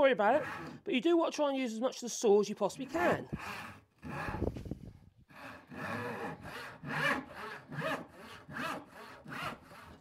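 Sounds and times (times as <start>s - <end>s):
hand saw cutting wood: 0.2s - 0.9s, 2.8s - 4.7s, 5.3s - 10.0s.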